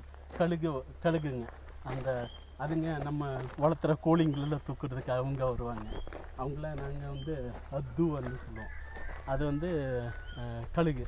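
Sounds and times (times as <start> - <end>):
man talking: 0.3 - 11.0
rooster crowing: 7.6 - 11.0.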